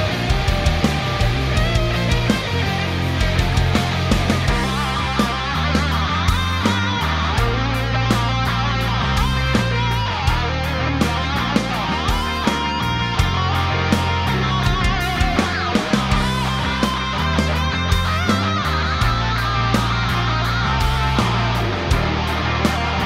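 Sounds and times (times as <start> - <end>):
electric guitar: 0.0 - 23.0
hard rock music: 0.0 - 23.0
steady drum beat: 0.0 - 23.0.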